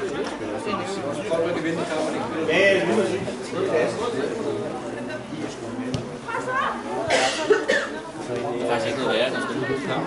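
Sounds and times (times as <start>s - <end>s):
people talking: 0.0s - 10.0s
person coughing: 7.1s - 8.0s.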